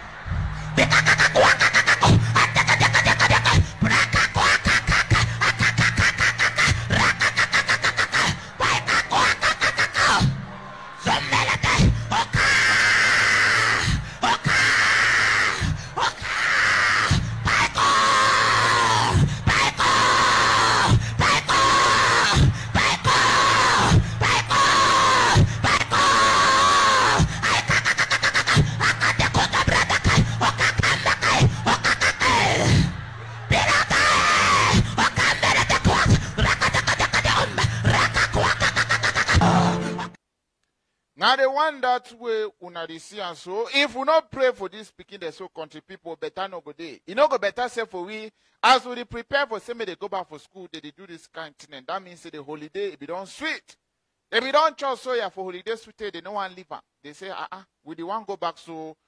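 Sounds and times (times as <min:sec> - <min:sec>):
man shouting into a microphone: 0:00.1 - 0:40.2.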